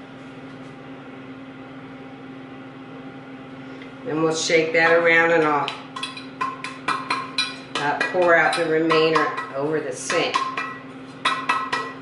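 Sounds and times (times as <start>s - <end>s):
metal pan knocking: 4.8s - 12.0s.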